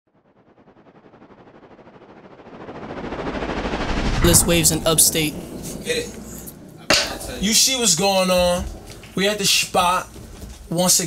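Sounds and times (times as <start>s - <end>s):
rapid pulsing electronic riser: 0.2s - 8.1s.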